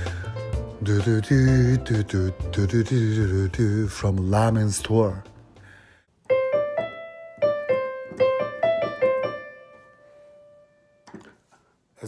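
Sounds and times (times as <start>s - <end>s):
piano melody: 6.2s - 11.0s.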